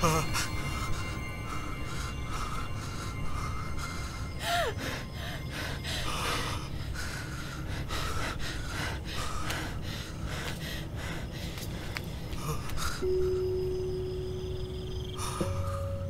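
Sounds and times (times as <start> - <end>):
frightened gasping breaths: 0.0 - 13.4
steady low hum: 0.0 - 16.0.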